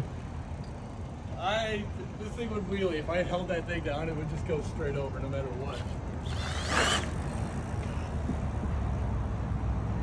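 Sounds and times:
low rumble of road traffic: 0.0s - 10.0s.

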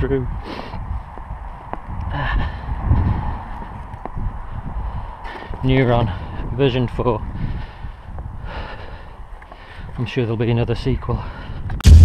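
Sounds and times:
low rumbling wind noise: 0.0s - 10.0s, 10.6s - 12.0s
man breathing heavily: 0.2s - 10.0s, 11.1s - 11.8s.

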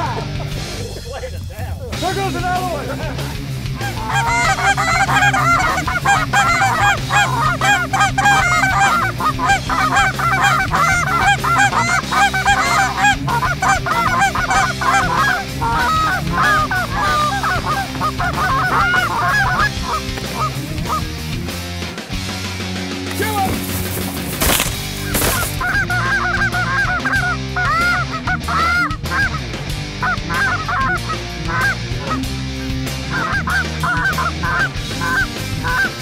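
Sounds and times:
low music bed: 0.0s - 36.0s
geese honking: 3.2s - 21.3s, 23.1s - 36.0s.

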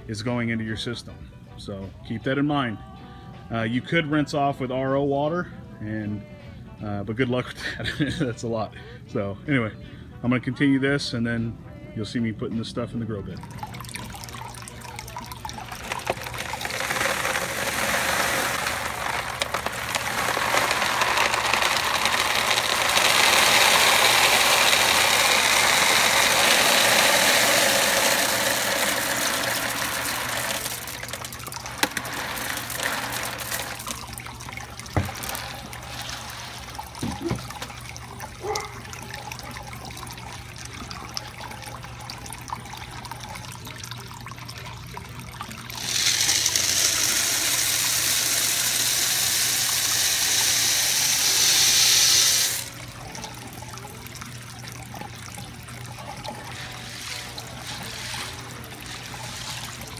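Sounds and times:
pebbles pouring into water: 13.5s - 59.9s.

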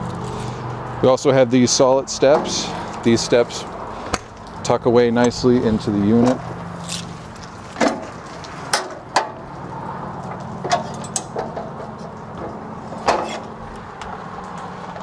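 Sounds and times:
metal steps clanking: 2.2s - 4.3s, 7.8s - 9.5s, 10.3s - 13.6s.

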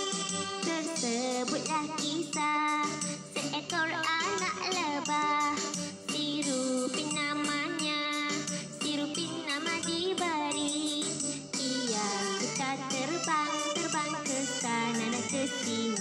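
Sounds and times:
children's song singing: 0.0s - 16.0s
instrumental backing music: 0.0s - 16.0s.

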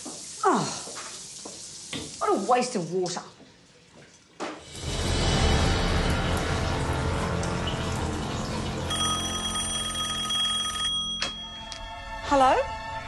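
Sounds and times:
tense music: 4.7s - 9.5s
telephone bell ringing: 8.9s - 11.7s.

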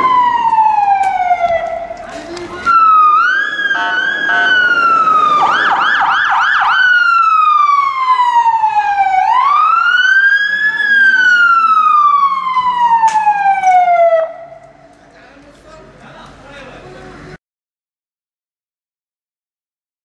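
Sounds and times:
electronic siren wailing: 0.0s - 2.0s, 2.7s - 14.6s.

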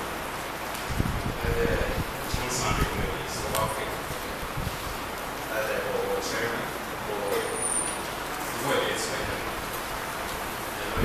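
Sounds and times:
man speaking over public address: 1.4s - 4.2s, 5.5s - 7.7s, 8.5s - 9.6s, 10.8s - 11.0s.

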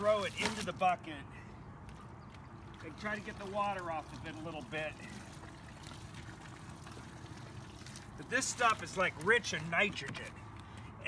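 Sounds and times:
water trickling into bucket: 1.7s - 9.9s.

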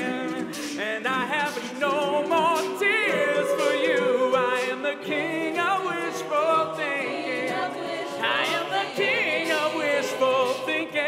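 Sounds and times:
a cappella group singing: 0.0s - 11.0s.

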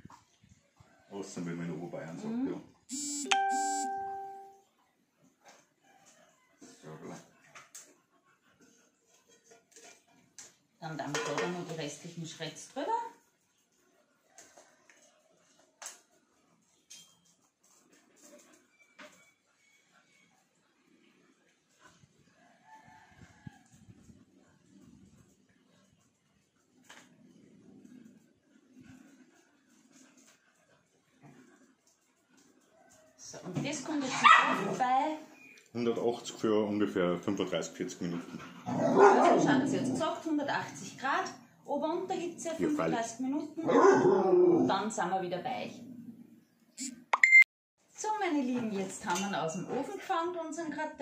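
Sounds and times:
buzzy blips: 2.9s - 4.0s
electronic chime ding: 2.9s - 4.6s, 47.2s - 47.4s
soft held tone: 2.9s - 4.6s.

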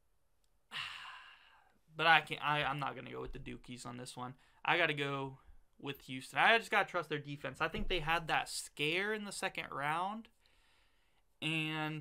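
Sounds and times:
man sighing: 0.7s - 1.7s.

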